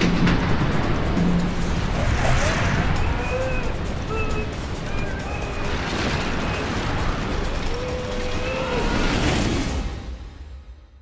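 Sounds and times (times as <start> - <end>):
low rumble and rushing noise: 0.0 - 11.0.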